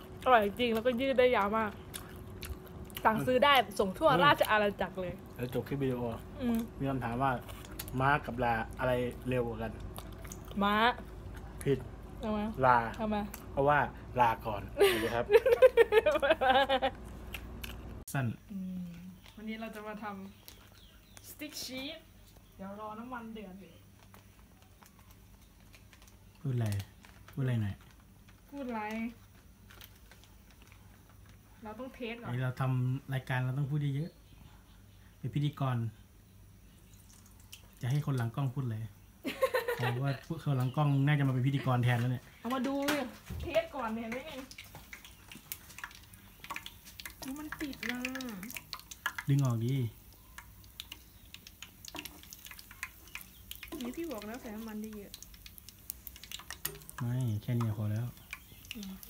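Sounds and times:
oil crackling and popping: 0.0s - 18.2s, 18.8s - 33.4s, 36.7s - 59.0s.

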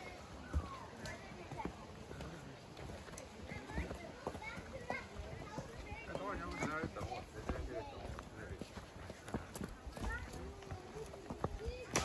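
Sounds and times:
footsteps on rocky trail: 0.0s - 12.0s.

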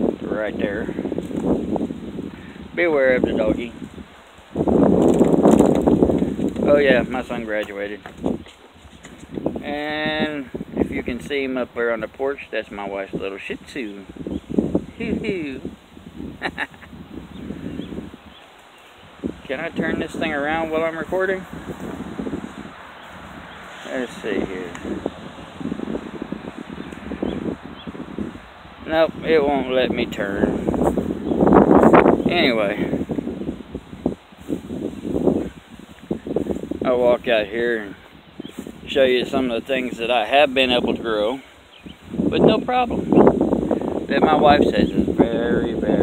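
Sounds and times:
rustling on microphone: 0.0s - 46.0s.

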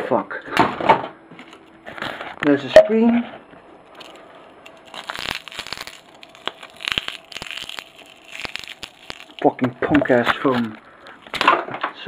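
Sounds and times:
phone parts crackling and snapping: 3.9s - 11.7s.

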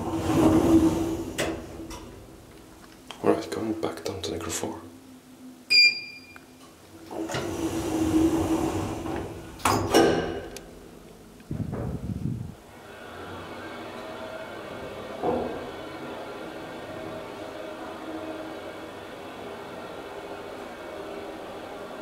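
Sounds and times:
elevator door clunk: 0.0s - 2.4s, 7.1s - 10.9s, 14.7s - 16.1s
elevator doors sliding shut: 0.0s - 2.7s, 7.0s - 12.2s, 12.8s - 22.0s
elevator descending hum: 0.0s - 3.0s, 5.2s - 22.0s.

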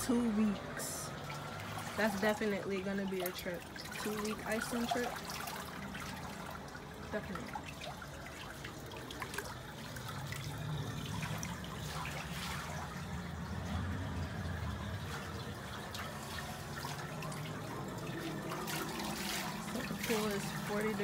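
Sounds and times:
low steady rumble: 0.0s - 21.0s
small water splashes: 0.0s - 21.0s
water trickling and dripping: 0.0s - 21.0s.

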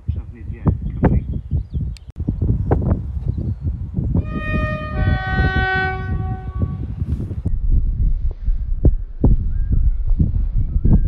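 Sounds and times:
low rumble: 2.2s - 11.0s
train horn two-note blast: 4.2s - 7.0s.

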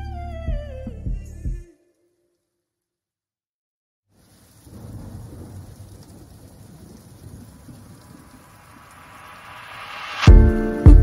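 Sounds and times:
rain-like hiss: 4.1s - 11.0s
low rumbling like thunder: 4.3s - 10.5s.

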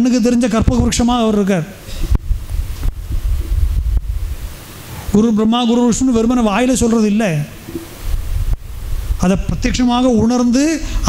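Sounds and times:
faint steady hiss: 0.0s - 11.0s
wind buffeting microphone: 1.9s - 5.2s, 7.6s - 10.4s.

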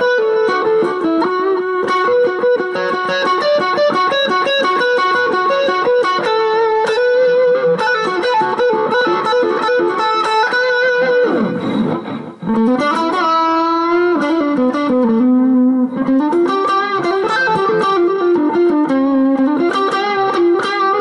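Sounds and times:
electric guitar lead line: 0.0s - 21.0s.

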